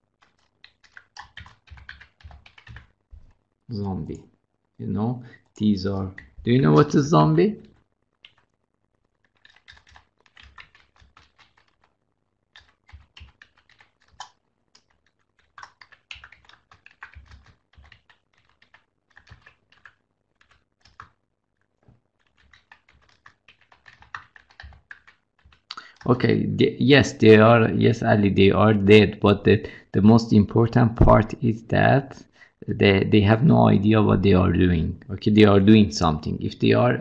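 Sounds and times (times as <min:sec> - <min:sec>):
keyboard typing: 0:00.2 - 0:04.2, 0:07.6 - 0:08.5, 0:09.2 - 0:11.9, 0:12.5 - 0:21.2, 0:22.2 - 0:26.2.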